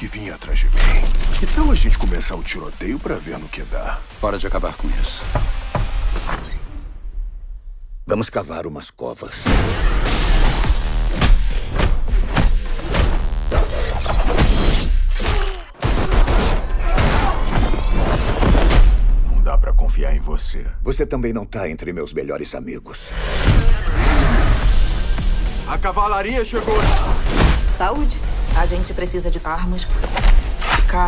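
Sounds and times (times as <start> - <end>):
trailer music: 0.0 - 8.3, 9.3 - 22.2, 22.9 - 31.0.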